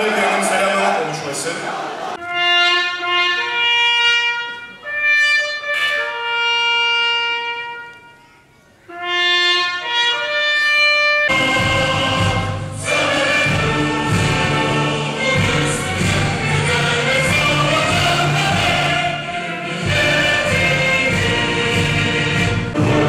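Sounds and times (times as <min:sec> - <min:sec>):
band music: 0:00.0 - 0:23.0.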